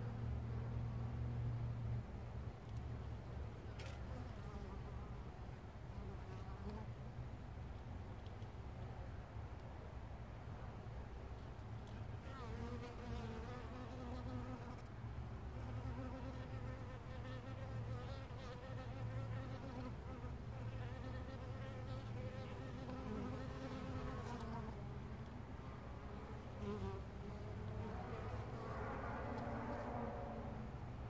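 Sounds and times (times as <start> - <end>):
honey bees buzzing: 15.7 - 30.6.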